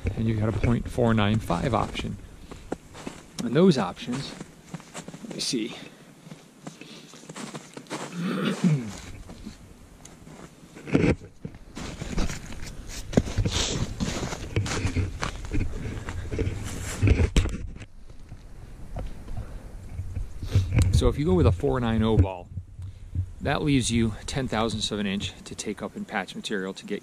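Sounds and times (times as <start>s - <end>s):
jacket rustling: 0.3s - 17.4s
person clearing throat: 8.1s - 9.1s
camera knocking and bumping: 10.8s - 12.4s, 16.3s - 17.9s.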